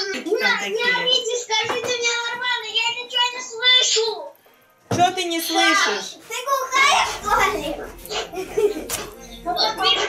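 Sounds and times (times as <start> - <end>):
children singing and talking: 6.4 - 10.0.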